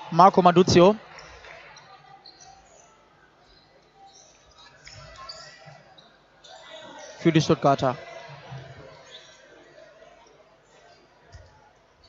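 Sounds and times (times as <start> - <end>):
distant crowd voices: 0.0 - 12.0
shoes squeaking on court floor: 1.1 - 7.5, 8.1 - 9.5.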